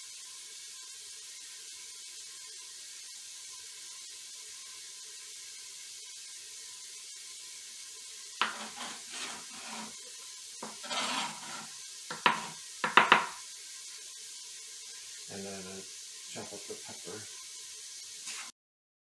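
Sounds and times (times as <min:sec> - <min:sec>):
food sizzling in a frying pan: 0:00.0 - 0:18.6
knife on plastic cutting board: 0:08.4 - 0:09.9, 0:10.6 - 0:13.4.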